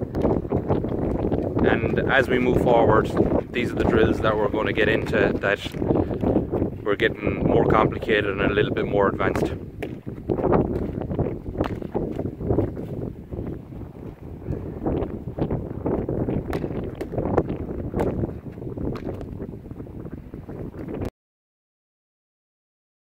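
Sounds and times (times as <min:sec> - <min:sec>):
wind buffeting microphone: 0:00.0 - 0:21.1.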